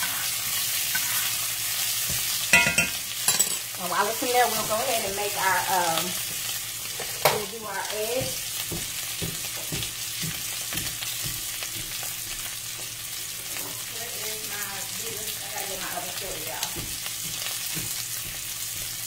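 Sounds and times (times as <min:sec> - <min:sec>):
steak sizzling in a skillet: 0:00.0 - 0:19.0.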